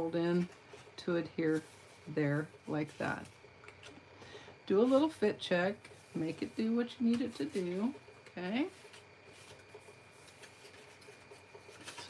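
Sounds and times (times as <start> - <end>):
cardstock rubbing and rustling: 0.0 - 3.4, 5.8 - 12.0.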